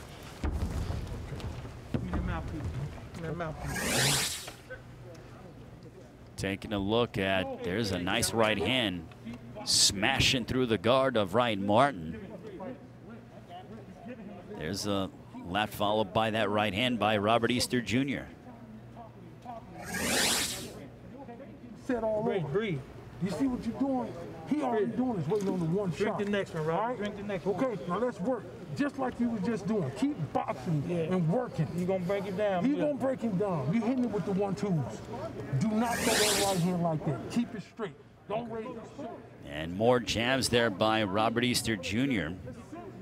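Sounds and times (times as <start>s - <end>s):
transition whoosh: 3.6s - 4.6s, 19.8s - 20.8s.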